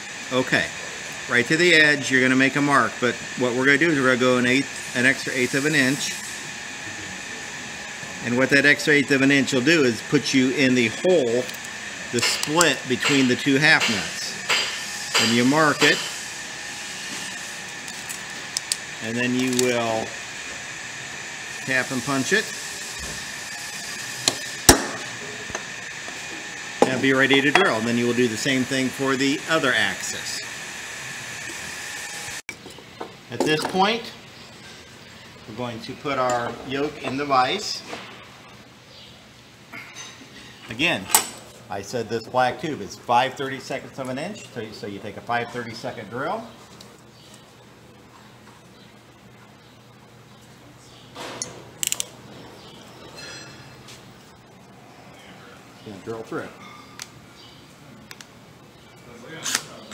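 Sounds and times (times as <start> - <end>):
hammer striking metal punch: 24.3 - 25.1.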